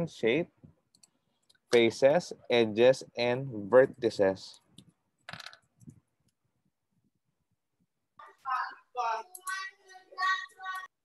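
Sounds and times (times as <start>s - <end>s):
child's voice through video call: 8.2s - 11.0s.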